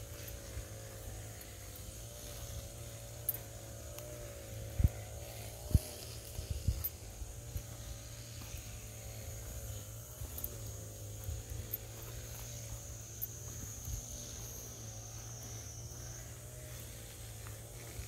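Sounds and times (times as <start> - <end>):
faint wavering hum: 0.0 - 18.0
footsteps on dirt path: 0.0 - 18.0
steady low rumble: 0.0 - 18.0.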